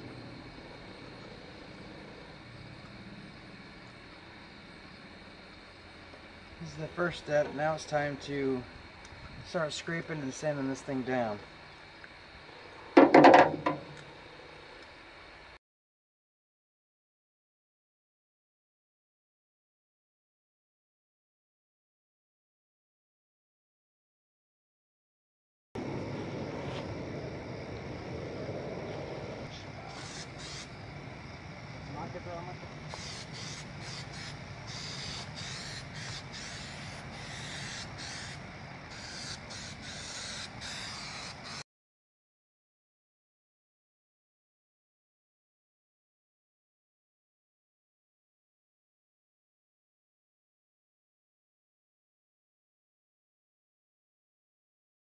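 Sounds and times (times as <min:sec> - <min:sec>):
low rumble: 0:25.8 - 0:29.8
aerosol can spraying hisses: 0:32.9 - 0:38.3.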